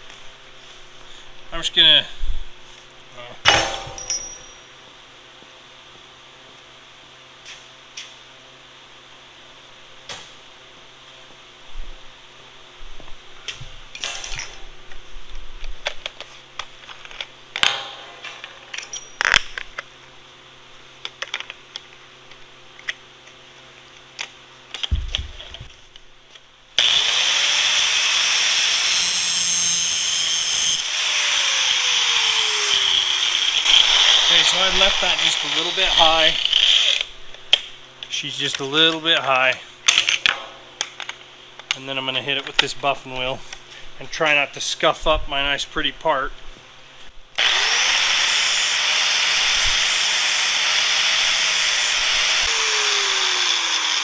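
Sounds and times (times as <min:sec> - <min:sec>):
angle grinder cutting metal: 0:26.8 - 0:37.1, 0:47.4 - 0:54.0.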